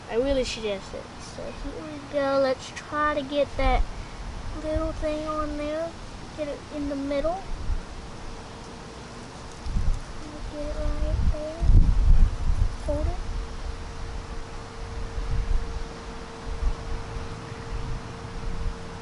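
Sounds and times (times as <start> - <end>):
wind buffeting microphone: 0.0 - 8.5, 9.5 - 19.0
faint steady hum: 0.0 - 19.0
young voice murmuring: 1.4 - 3.8, 10.2 - 11.8, 12.8 - 13.2.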